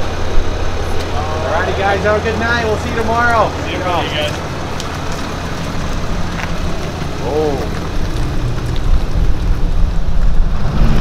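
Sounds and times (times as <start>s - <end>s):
diesel truck engine rumble: 0.0s - 11.0s.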